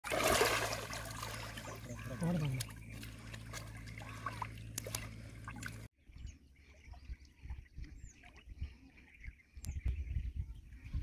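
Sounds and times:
water splashing and sloshing: 0.0s - 5.9s.

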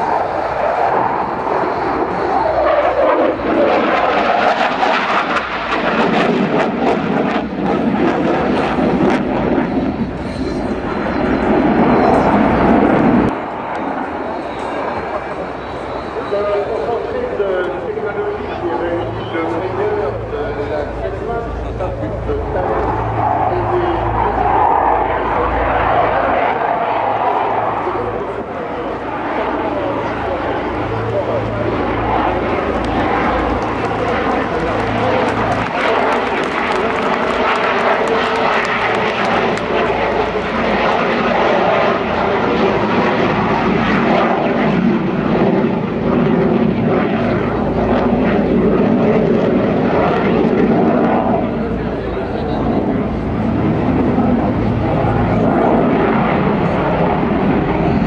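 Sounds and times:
jet fighter flying overhead: 0.0s - 58.0s.

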